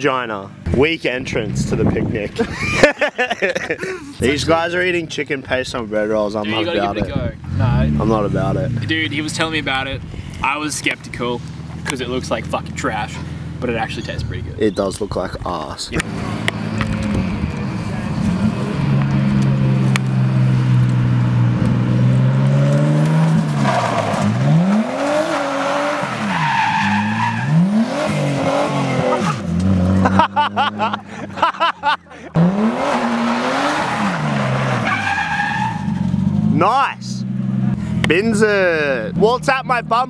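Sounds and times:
car engine revving: 0:07.0 - 0:14.6, 0:16.0 - 0:40.0
tyres squealing and skidding: 0:12.9 - 0:15.0, 0:22.3 - 0:30.0, 0:31.8 - 0:36.5.

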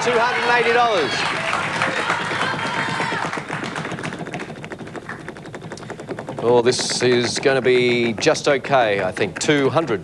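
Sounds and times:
prize wheel clicking as it spins: 0:02.0 - 0:10.0.

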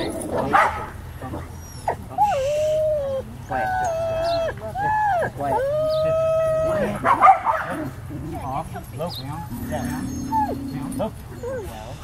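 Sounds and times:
huskies howling: 0:00.0 - 0:08.6, 0:09.2 - 0:12.0.

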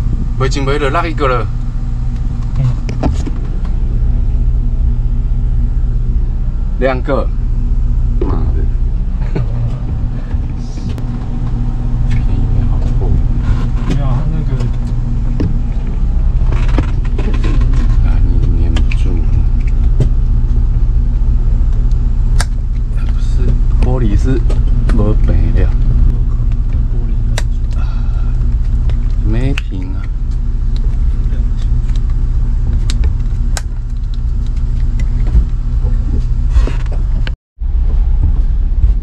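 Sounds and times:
boat engine idling: 0:00.0 - 0:39.0.

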